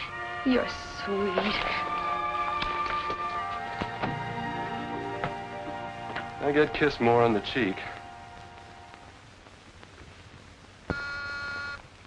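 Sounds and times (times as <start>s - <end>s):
intercom buzzer: 10.9s - 11.8s.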